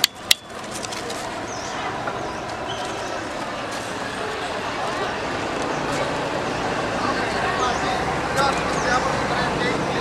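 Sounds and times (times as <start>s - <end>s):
outdoor background noise: 0.0s - 10.0s
indistinct voices: 0.7s - 10.0s.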